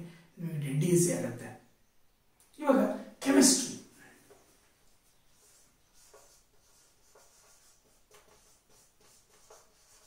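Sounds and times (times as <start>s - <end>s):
marker pen squeaking on whiteboard: 5.0s - 10.0s.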